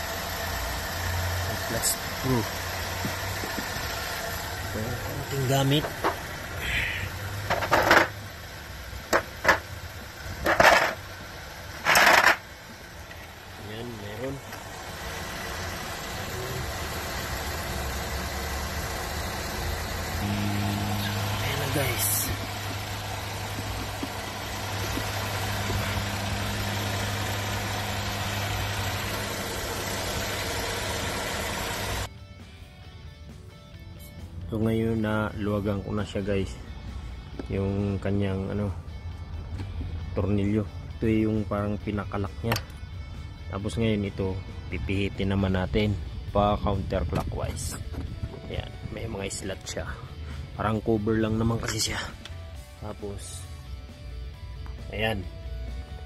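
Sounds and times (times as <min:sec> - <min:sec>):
low engine hum: 0:00.0 - 0:34.5, 0:35.3 - 0:56.0.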